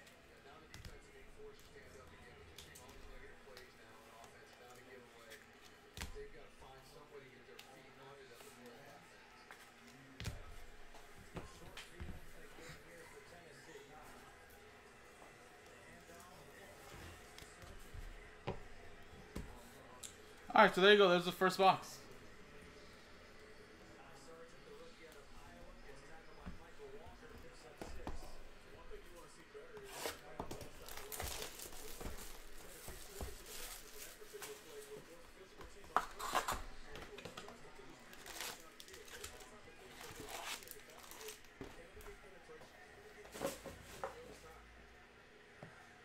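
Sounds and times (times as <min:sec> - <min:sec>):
card packs handling noises: 0:29.8 - 0:35.1, 0:35.7 - 0:42.0
plastic wrapping crinkling: 0:30.8 - 0:34.6, 0:38.1 - 0:41.5.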